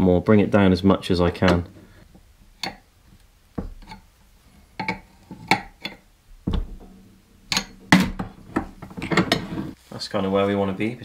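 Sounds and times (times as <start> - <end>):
metal parts and wrench clinking: 6.6 - 9.6.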